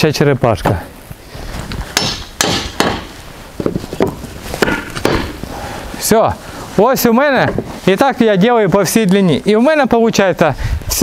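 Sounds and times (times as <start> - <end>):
sharp knocks on wooden board: 2.0 - 5.4.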